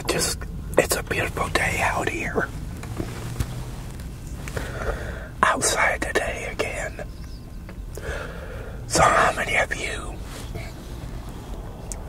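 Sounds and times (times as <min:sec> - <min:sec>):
man talking: 0:00.0 - 0:02.5, 0:05.4 - 0:07.1, 0:08.9 - 0:10.2
low steady hum: 0:00.0 - 0:12.0.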